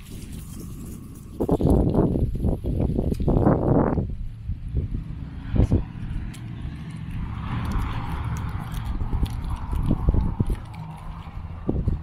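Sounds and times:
car passing on street: 0.0s - 12.0s.

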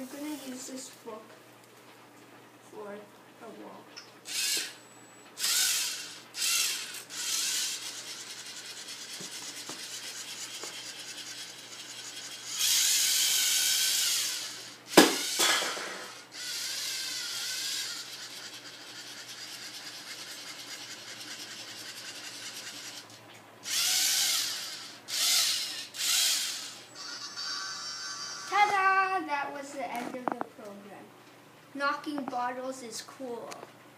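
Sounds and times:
robot servo motors whirring: 4.3s - 4.8s, 5.4s - 15.4s, 16.0s - 28.7s
sharp knock: 15.0s - 16.1s.

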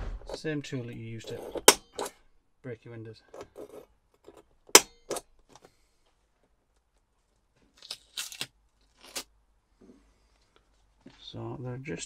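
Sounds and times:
centre punch snapping on plastic: 4.7s - 5.2s.

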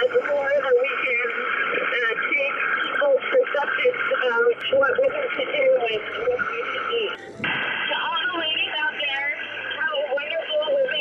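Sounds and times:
woman speaking through diving mask: 7.9s - 11.0s.

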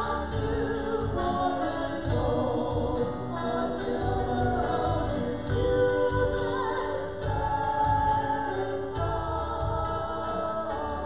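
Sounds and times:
instrumental accompaniment: 0.0s - 11.0s
people singing together: 0.0s - 11.0s.

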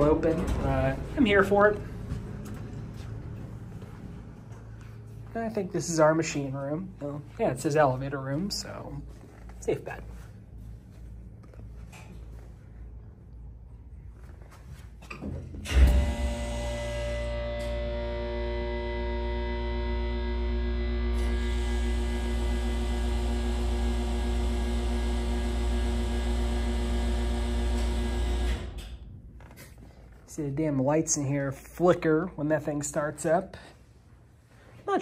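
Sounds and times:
hydraulic pump humming: 15.6s - 29.5s.

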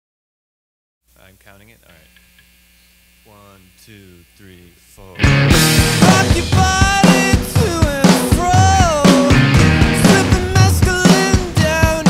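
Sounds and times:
electrical mains hum: 1.0s - 5.5s.

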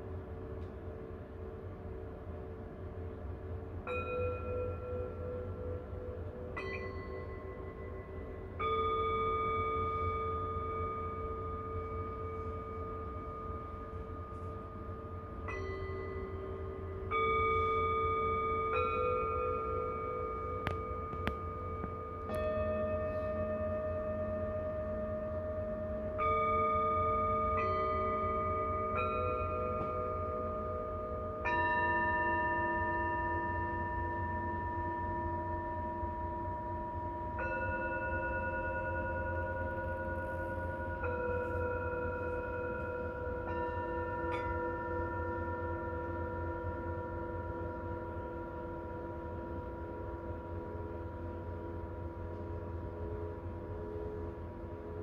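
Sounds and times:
singing bowls ringing: 0.0s - 55.0s.

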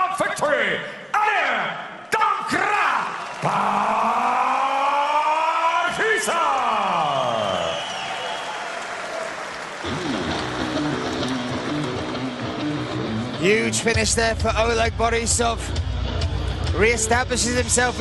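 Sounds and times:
crowd applause: 2.9s - 13.2s.

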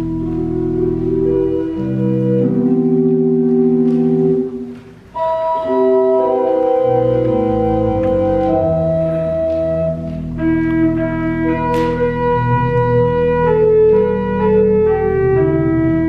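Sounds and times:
organ playing slow chords: 0.0s - 16.0s.

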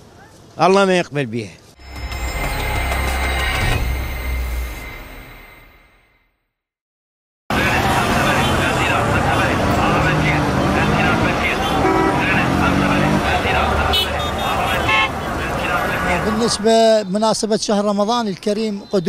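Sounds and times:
traffic: 0.0s - 6.1s, 7.5s - 19.0s
car horns tooting: 7.6s - 16.8s.

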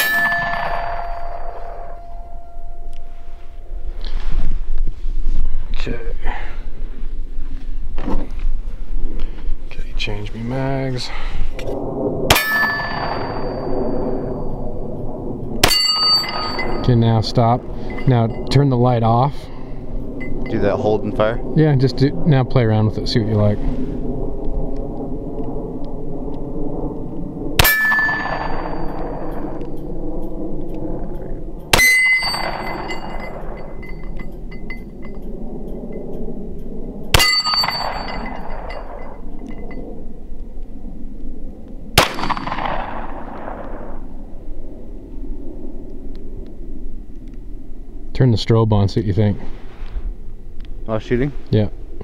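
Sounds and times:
steel target plate clang: 0.0s - 2.9s, 12.3s - 13.7s, 15.6s - 16.9s, 27.6s - 29.0s, 31.7s - 35.2s, 37.1s - 39.8s
steady low hum: 0.0s - 52.0s
pistol shots echoing: 42.0s - 43.1s.

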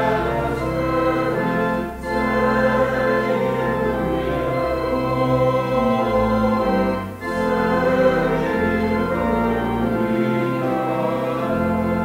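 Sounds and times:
church organ playing a hymn: 0.0s - 12.0s
voices singing: 0.0s - 12.0s.

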